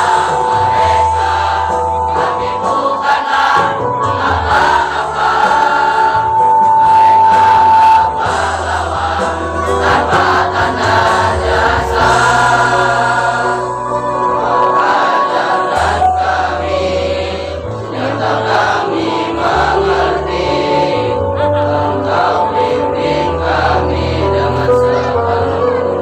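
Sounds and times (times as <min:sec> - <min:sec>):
children's choir singing: 0:00.0 - 0:26.0.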